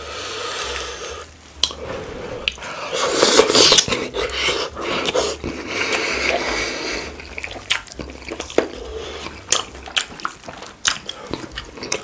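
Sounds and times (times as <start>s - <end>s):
wet biting and chewing: 2.4s - 12.0s.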